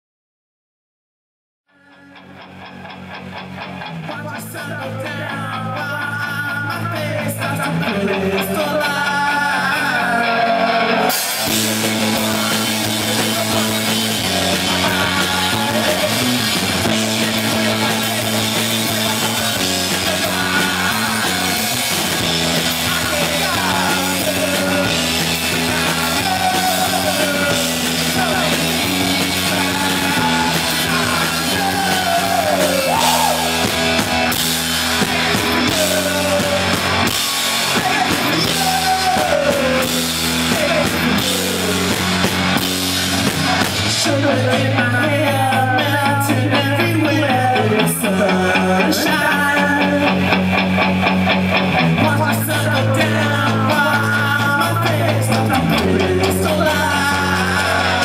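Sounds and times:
garage rock band playing: 1.7s - 58.0s
sliding lead guitar lines: 1.7s - 58.0s.

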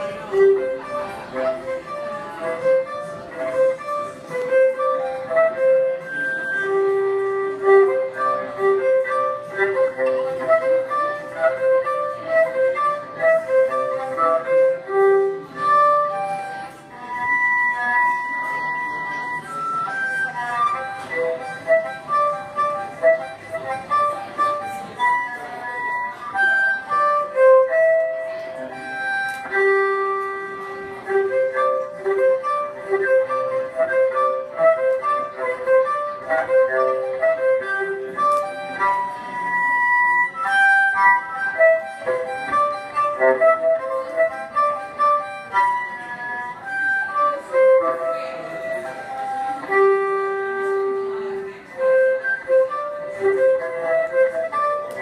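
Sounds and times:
solo violin harmonics: 0.0s - 55.0s.

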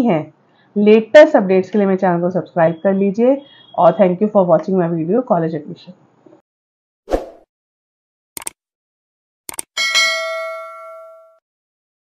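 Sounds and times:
notification bell chime: 9.8s - 11.4s.

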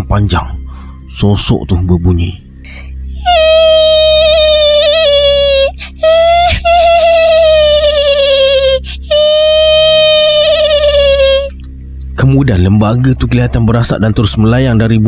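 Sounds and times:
low music drone: 0.0s - 15.0s
shrill high-pitched wailing cry: 3.1s - 11.5s.

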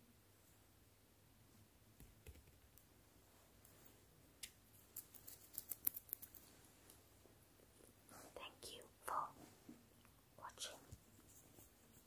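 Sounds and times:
person whispering: 8.1s - 9.6s, 10.3s - 11.1s.

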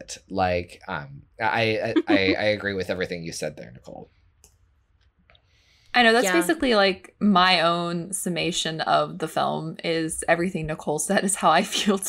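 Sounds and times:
woman speaking: 2.0s - 2.4s, 6.0s - 12.0s.

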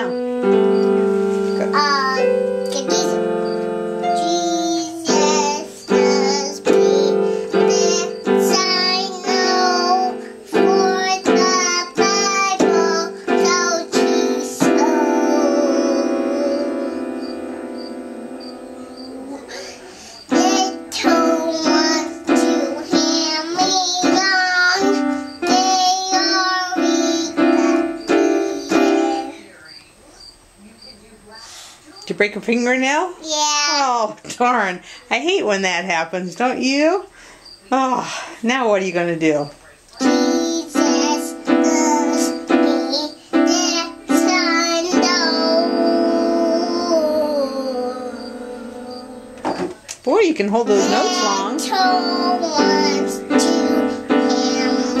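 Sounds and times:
electronic keyboard piano chords: 0.0s - 29.7s, 40.0s - 55.0s
cricket chirping: 0.0s - 32.1s, 37.1s - 38.4s, 39.4s - 55.0s
toddler singing: 1.4s - 17.5s, 19.0s - 29.5s, 33.2s - 34.0s, 40.0s - 49.6s, 50.7s - 55.0s.

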